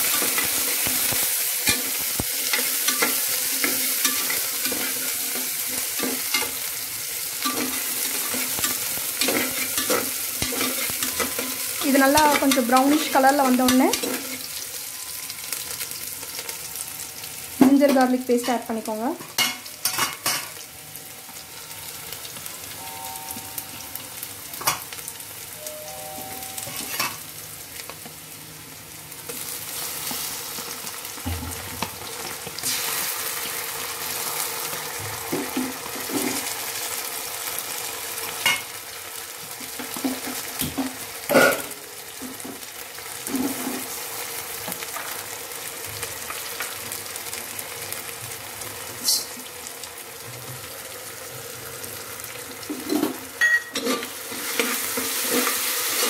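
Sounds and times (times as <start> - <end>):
onions sizzling in hot oil: 0.0 - 56.0.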